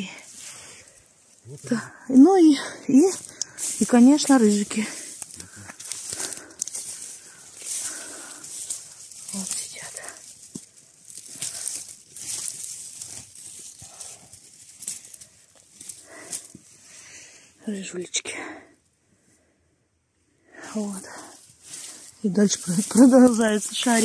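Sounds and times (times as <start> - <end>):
dry grass rustling and crackling: 0.0 - 17.4, 20.6 - 24.0.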